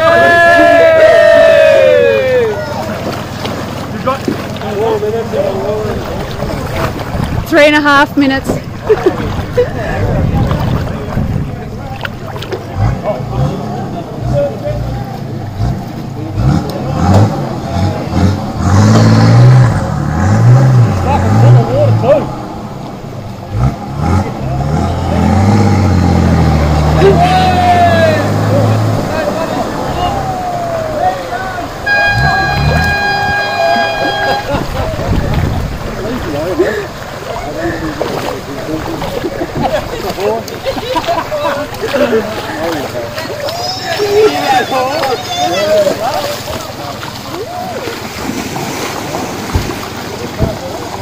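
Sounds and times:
crowd chattering and laughing: 0:00.0 - 0:51.0
vehicle engine working: 0:09.4 - 0:41.0
car horn steady note: 0:31.8 - 0:34.8.

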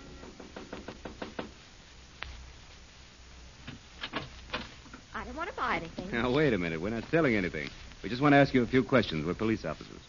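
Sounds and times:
knocking on a door: 0:00.2 - 0:01.6.

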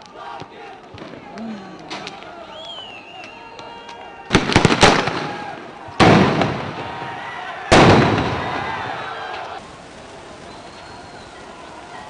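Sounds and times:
heavy echoing blasts: 0:00.0 - 0:11.9
sharp bangs: 0:04.3 - 0:09.0.

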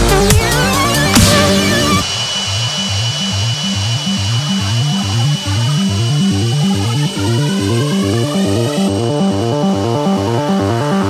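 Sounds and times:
dubstep synth bass line: 0:00.0 - 0:11.0.

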